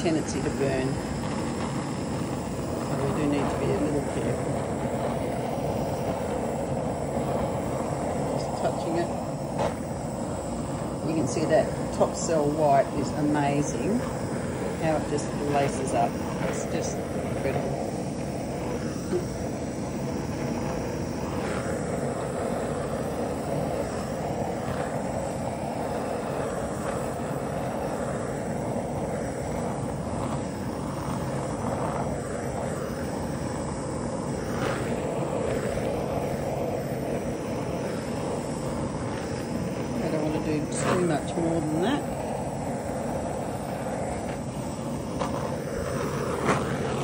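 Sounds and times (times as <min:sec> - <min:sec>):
heat gun rushing: 0:00.0 - 0:47.0.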